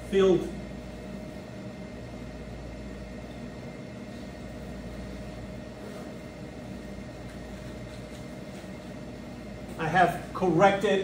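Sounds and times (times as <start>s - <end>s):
ventilation hum: 0.0s - 11.0s.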